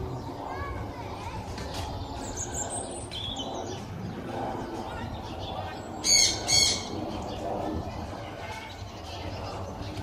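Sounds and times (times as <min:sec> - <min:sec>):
faint background birdsong: 0:00.0 - 0:10.0.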